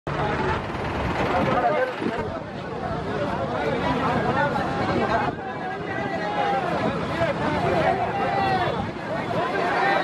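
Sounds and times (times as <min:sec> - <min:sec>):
vehicle engine running: 0:00.1 - 0:03.0
people talking: 0:00.1 - 0:10.0.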